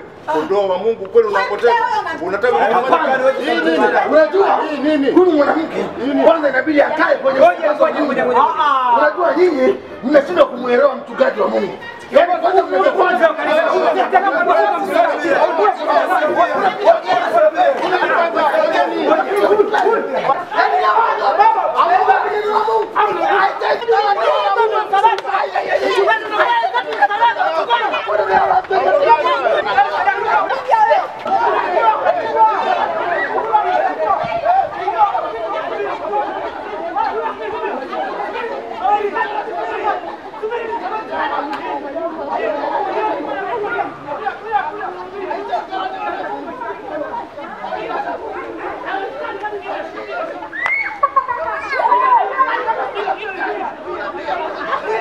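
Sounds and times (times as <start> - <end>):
crowd chattering: 0.0 - 55.0.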